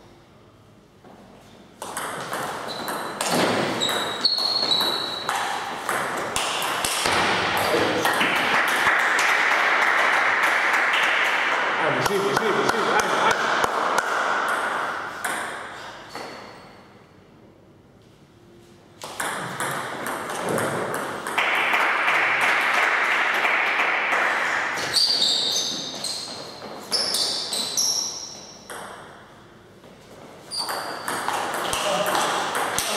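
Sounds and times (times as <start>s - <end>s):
table tennis ball pinging: 1.8s - 8.6s, 19.0s - 21.9s, 30.5s - 32.9s.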